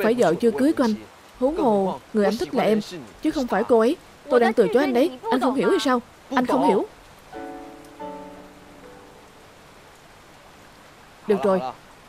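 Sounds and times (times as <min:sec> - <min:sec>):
soft background music chord: 0:06.4 - 0:09.9.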